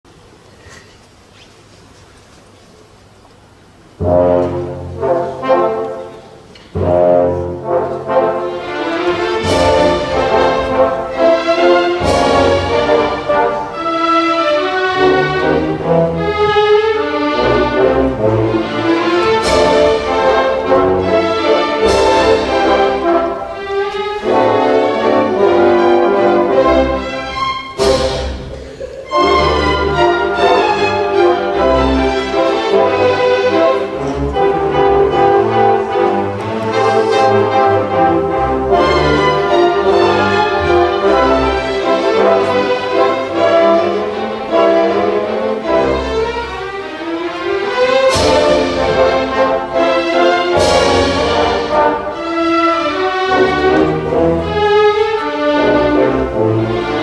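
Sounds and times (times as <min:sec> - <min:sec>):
orchestra playing ballet music: 0:02.2 - 0:57.0
violins: 0:04.0 - 0:57.0.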